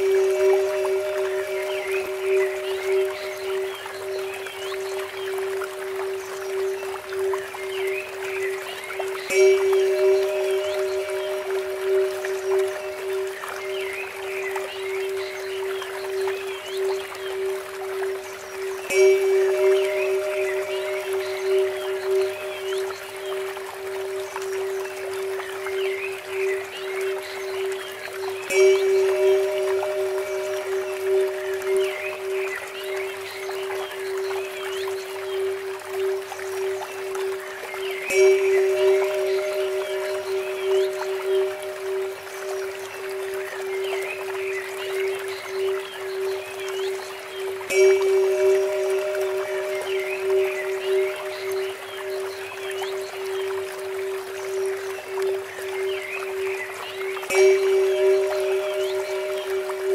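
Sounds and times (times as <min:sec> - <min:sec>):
temple bell ringing: 0:00.0 - 0:07.6, 0:09.2 - 0:17.5, 0:18.4 - 0:24.2, 0:25.8 - 0:34.9, 0:37.8 - 0:44.2, 0:44.8 - 0:59.9
birds chirping: 0:00.0 - 0:59.9
trickling water fountain: 0:00.0 - 0:59.9.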